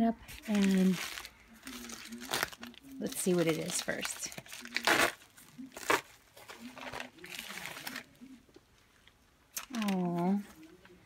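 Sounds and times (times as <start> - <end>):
paper mailer crinkling and rustling: 0.4 - 8.2.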